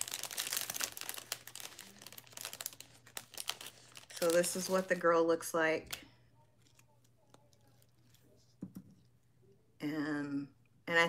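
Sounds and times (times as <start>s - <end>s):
packaging crinkling and rustling: 0.0s - 8.3s.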